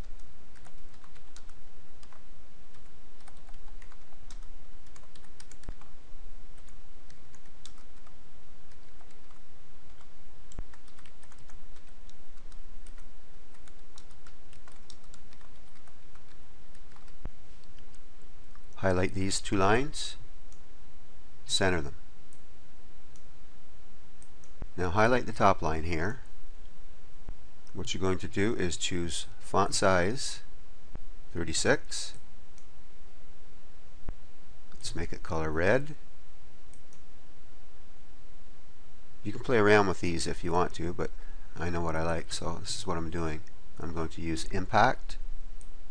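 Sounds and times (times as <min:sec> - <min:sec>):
typing on keyboard: 0:00.0 - 0:05.9, 0:06.6 - 0:18.6
background hiss: 0:00.0 - 0:45.9
background noise: 0:00.0 - 0:45.9
computer mouse clicking: 0:06.6 - 0:18.8.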